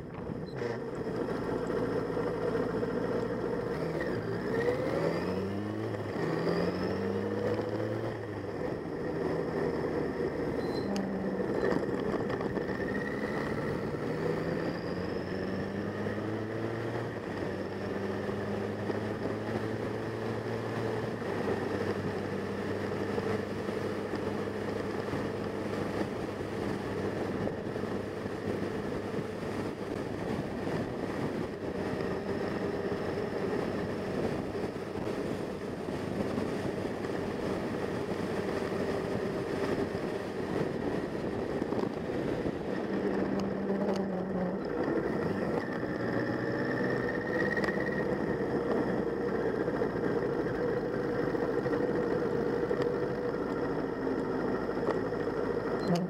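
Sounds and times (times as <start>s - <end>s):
motorcycle engine running: 0.0s - 56.0s
road and wind noise: 0.0s - 56.0s.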